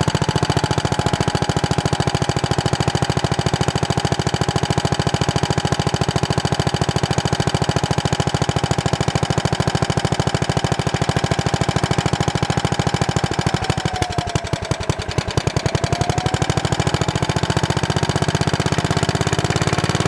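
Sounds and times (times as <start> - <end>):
single-cylinder engine running under load: 0.0 - 20.0.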